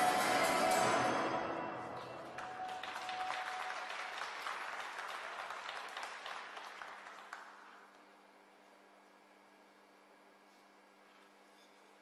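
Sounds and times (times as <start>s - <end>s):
skating music: 0.0s - 3.7s
audience applauding: 0.0s - 7.9s.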